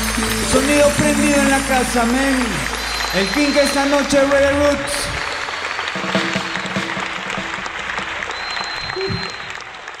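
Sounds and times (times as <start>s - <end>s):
stray instrument notes: 0.0s - 4.8s
audience applauding: 0.0s - 10.0s.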